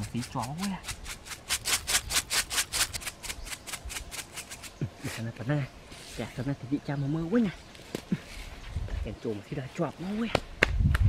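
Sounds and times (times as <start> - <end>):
rice rattling in plastic bottle: 0.0 - 4.8
grains scattering on sandy ground: 0.0 - 5.3.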